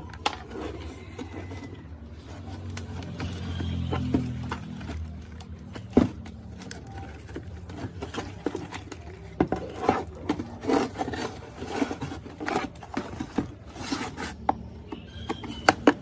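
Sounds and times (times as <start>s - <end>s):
hands scraping plastic housing: 0.0s - 16.0s.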